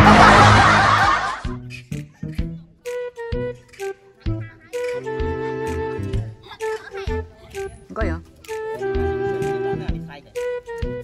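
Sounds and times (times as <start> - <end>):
burst of laughter: 0.0 - 1.6.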